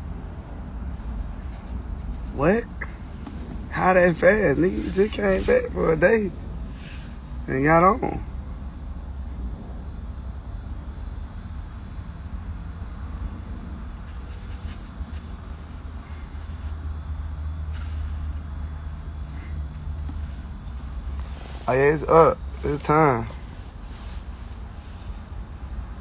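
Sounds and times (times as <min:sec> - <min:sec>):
road noise: 0:00.0 - 0:26.0
car engine rumble: 0:00.7 - 0:12.2, 0:12.8 - 0:26.0.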